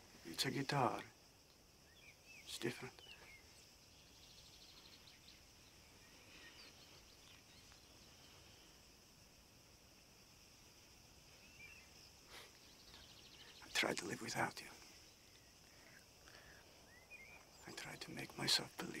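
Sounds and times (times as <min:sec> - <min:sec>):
high insect trill: 0:00.0 - 0:19.0
bird chirp: 0:00.2 - 0:09.0, 0:11.2 - 0:19.0
man's voice: 0:17.6 - 0:19.0.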